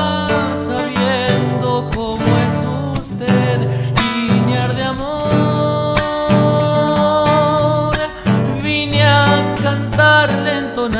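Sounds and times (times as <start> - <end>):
classical guitar plucking: 0.0 - 10.9
man singing long note with vibrato: 0.0 - 10.9.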